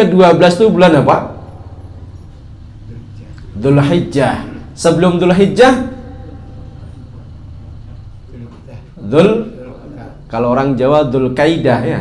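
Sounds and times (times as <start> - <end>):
low hum and rumble: 0.9 - 11.2.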